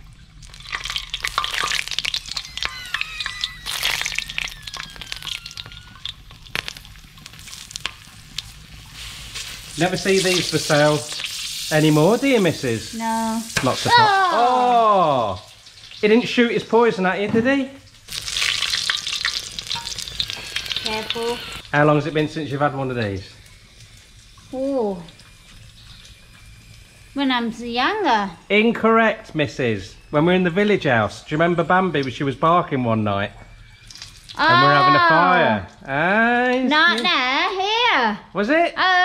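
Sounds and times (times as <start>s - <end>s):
oil crackling and popping: 0.0s - 16.4s, 17.8s - 27.2s, 33.6s - 34.4s
sizzling in hot oil: 0.0s - 32.4s, 33.5s - 37.8s.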